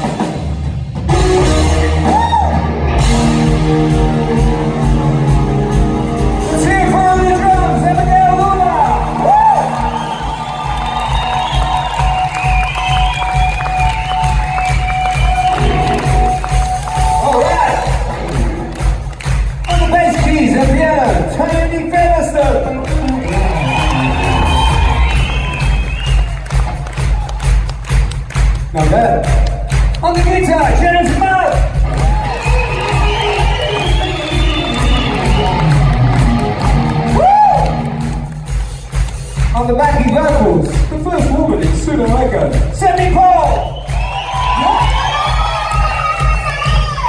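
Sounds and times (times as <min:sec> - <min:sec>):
drum beat: 0:00.0 - 0:47.0
heavy bass: 0:00.0 - 0:47.0
live band music: 0:00.0 - 0:47.0
audience cheering and whooping: 0:01.6 - 0:03.1, 0:08.2 - 0:18.8, 0:22.4 - 0:28.0, 0:31.8 - 0:38.6, 0:43.4 - 0:47.0.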